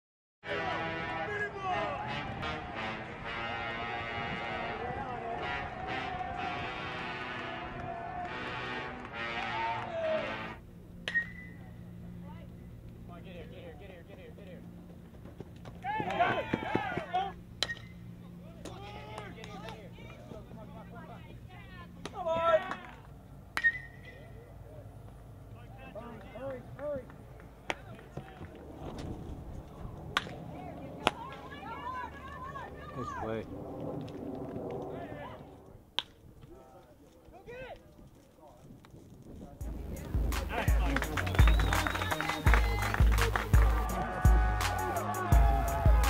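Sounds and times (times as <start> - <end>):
voices shouting and calling: 0.5 - 10.6, 15.6 - 28.8, 29.8 - 33.5, 39.9 - 46.0
baseball bat hitting ball: 11.0 - 11.5, 17.6 - 17.9, 23.5 - 24.1.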